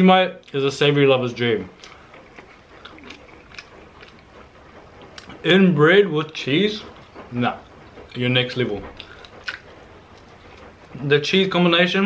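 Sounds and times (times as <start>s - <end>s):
quiet chewing: 1.7s - 5.4s, 6.2s - 11.0s.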